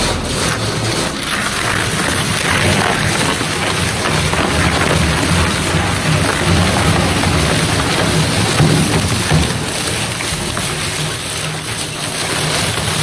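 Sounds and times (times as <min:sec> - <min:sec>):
shredder tearing sandpaper: 0:00.0 - 0:13.0.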